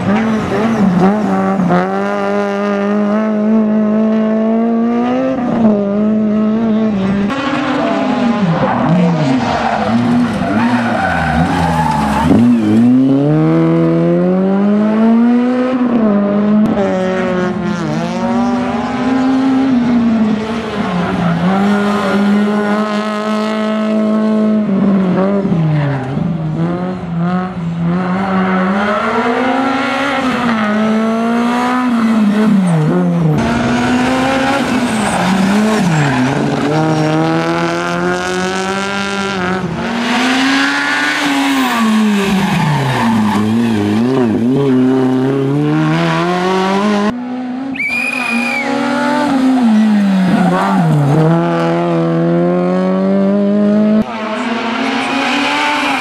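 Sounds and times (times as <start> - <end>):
rally car engine revving hard: 0.0 - 47.7, 48.7 - 56.0
tyre squeal: 47.7 - 48.8.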